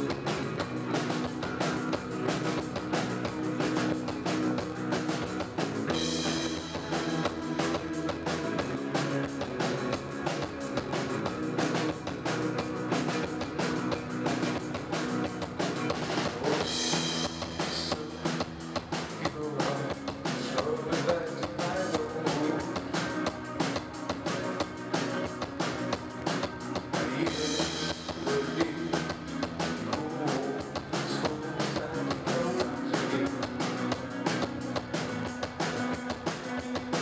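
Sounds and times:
bass guitar: 0.0 - 37.0
drum kit beat: 0.0 - 37.0
electric guitar: 0.0 - 37.0.

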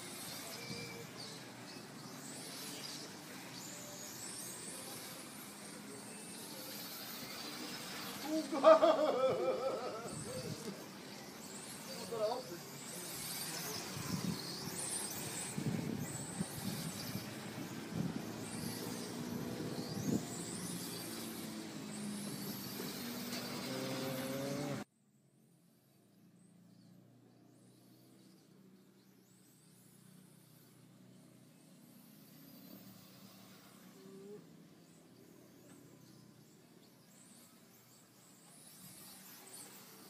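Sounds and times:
rc car motor whine: 0.0 - 24.9, 25.8 - 40.0
background hiss: 0.0 - 25.9.

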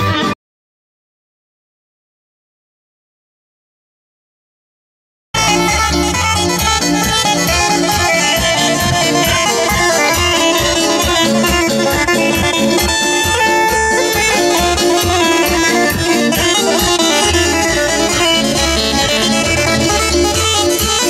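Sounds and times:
folk dance music over loudspeakers: 5.4 - 21.0.

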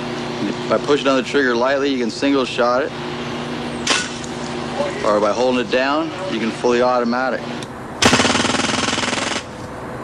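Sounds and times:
pellet gun automatic firing: 3.8 - 4.4, 8.0 - 9.6.

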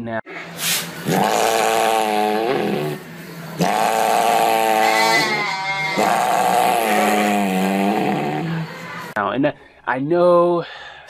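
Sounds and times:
sheep bleating loudly: 3.6 - 8.8.

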